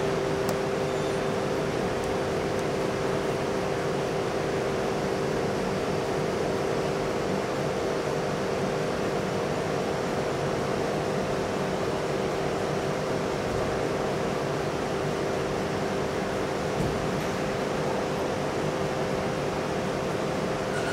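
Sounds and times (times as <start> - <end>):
machine hum: 0.0 - 8.4.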